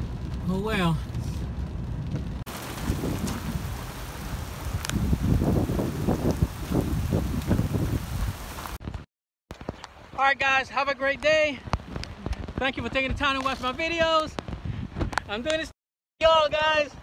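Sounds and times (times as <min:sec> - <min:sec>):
low rumbles: 0:00.0 - 0:09.0
rain falling steadily: 0:00.0 - 0:09.0.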